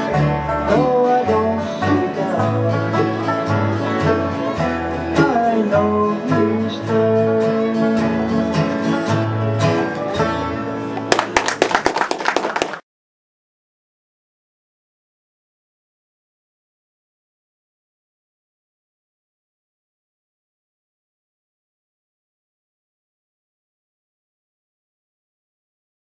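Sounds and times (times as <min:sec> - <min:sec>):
walking bass line: 0:00.0 - 0:11.4
bluegrass band playing: 0:00.0 - 0:12.6
people clapping: 0:11.0 - 0:12.8.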